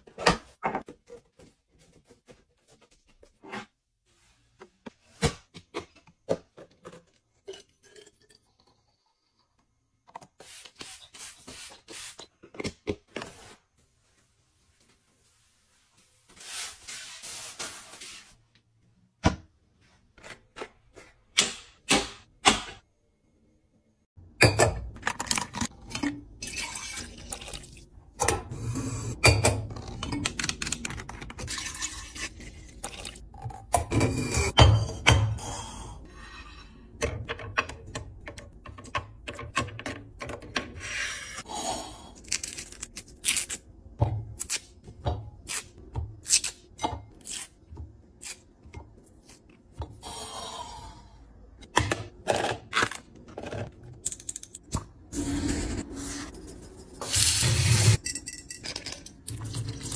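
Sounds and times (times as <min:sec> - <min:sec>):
kitchen items clicking and knocking: 0:24.2 - 0:27.6, 0:36.9 - 0:40.9, 0:57.8 - 0:59.8.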